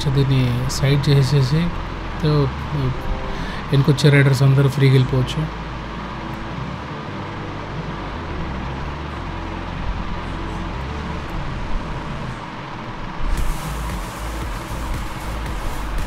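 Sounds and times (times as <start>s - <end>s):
rushing hiss: 13.3s - 16.0s.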